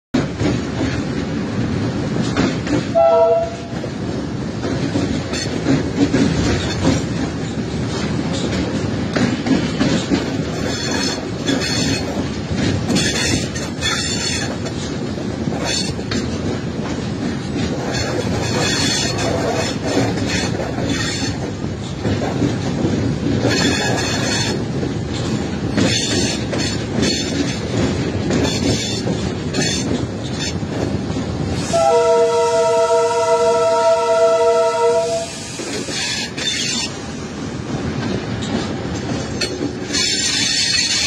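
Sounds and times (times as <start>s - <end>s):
locomotive engine and wheels rumbling: 0.1s - 41.0s
track clattering: 0.1s - 41.0s.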